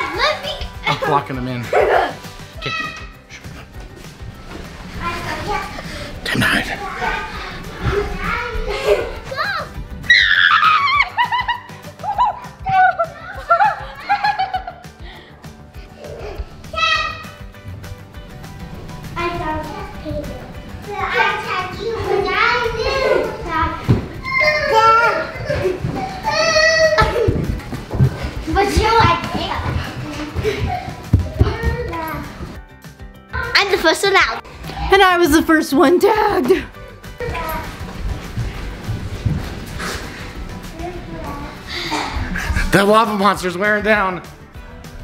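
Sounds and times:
background music: 0.0s - 45.0s
children shrieking and shouting: 1.8s - 3.3s, 6.4s - 14.5s, 16.0s - 17.5s, 19.2s - 27.6s
people laughing: 10.6s - 15.1s, 24.6s - 27.5s, 41.8s - 42.8s.

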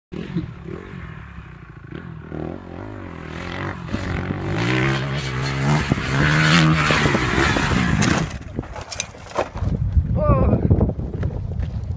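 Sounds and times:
dirt bike engine revving: 0.2s - 8.6s.

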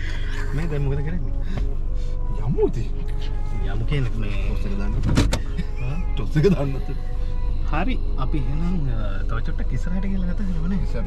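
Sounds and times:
steady low hum: 0.0s - 11.0s
man talking: 0.4s - 1.4s, 2.4s - 7.0s, 7.6s - 11.0s.

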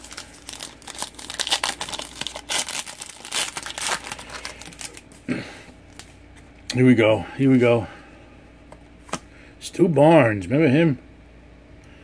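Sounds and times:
wrapper crinkling and rustling: 0.0s - 5.2s.

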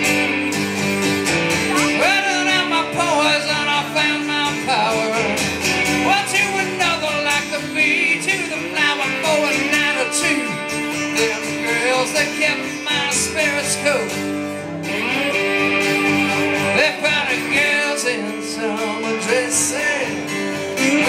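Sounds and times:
second guitar: 0.0s - 21.0s
strummed acoustic guitar: 0.0s - 21.0s
man singing: 1.6s - 21.0s.

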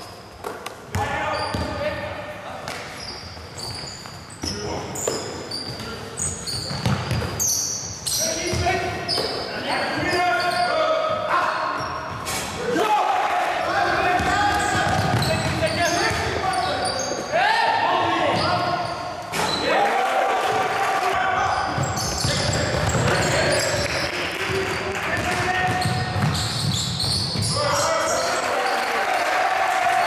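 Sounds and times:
basketball bouncing on court: 0.9s - 1.8s, 5.0s - 7.4s, 8.5s - 9.4s, 14.0s - 16.4s, 21.5s - 27.6s.

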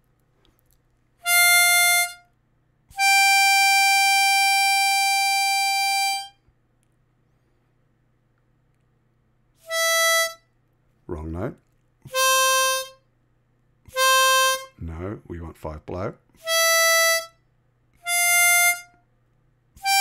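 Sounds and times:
harmonica notes: 1.2s - 6.4s, 9.6s - 10.6s, 12.1s - 13.1s, 13.9s - 15.1s, 16.4s - 17.4s, 18.0s - 19.0s, 19.8s - 20.0s.

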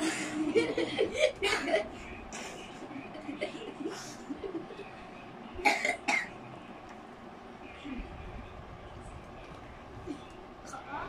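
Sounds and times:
child coughing: 5.6s - 6.4s.

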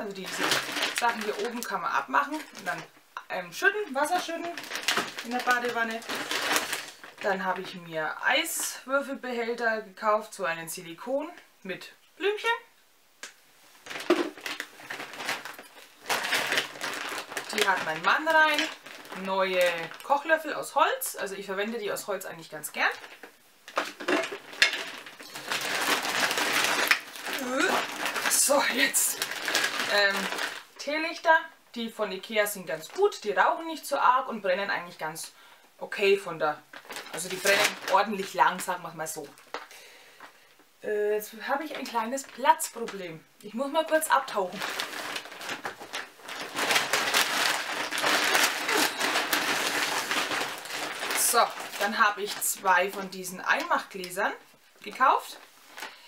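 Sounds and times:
plastic bag rustling: 0.0s - 7.9s, 13.6s - 20.7s, 21.4s - 31.2s, 36.0s - 40.6s, 41.4s - 56.0s.

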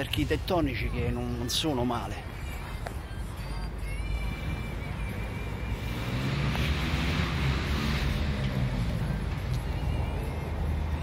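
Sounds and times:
steady low traffic rumble: 0.0s - 11.0s
passing vehicle tyre and engine noise: 2.2s - 11.0s.

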